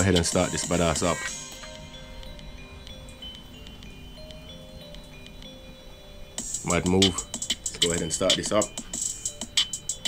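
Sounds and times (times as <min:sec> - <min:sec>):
chime-like bell notes: 0:00.0 - 0:10.0
soft background music: 0:00.0 - 0:10.0.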